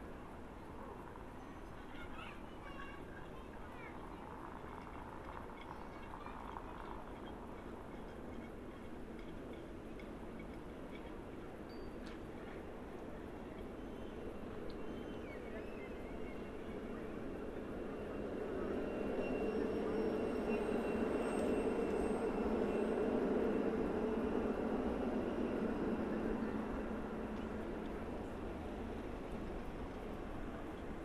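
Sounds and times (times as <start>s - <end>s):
tram rumbling on rails: 0.0s - 31.0s.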